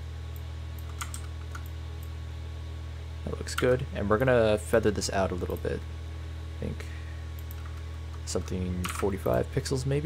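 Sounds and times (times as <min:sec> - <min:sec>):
steady low hum: 0:00.0 - 0:10.0
keyboard and mouse clicks: 0:00.8 - 0:01.7.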